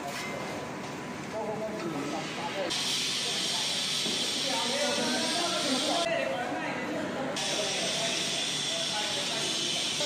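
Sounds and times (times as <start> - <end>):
machine hiss and cooling fan: 0.0 - 10.0.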